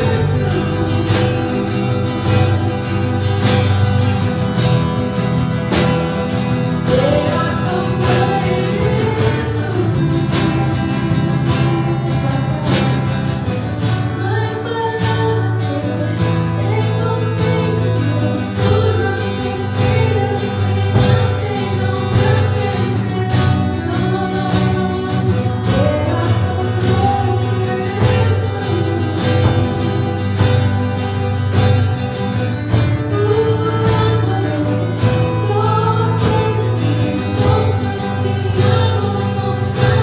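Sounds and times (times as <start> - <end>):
drum kit beat: 0.0 - 14.4, 17.4 - 40.0
acoustic guitar strumming: 0.0 - 40.0
second guitar: 0.0 - 40.0
woman singing lead: 0.0 - 40.0.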